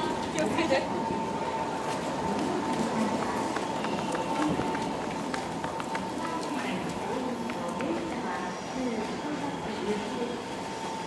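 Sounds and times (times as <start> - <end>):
footsteps on pavement: 1.8 - 8.1.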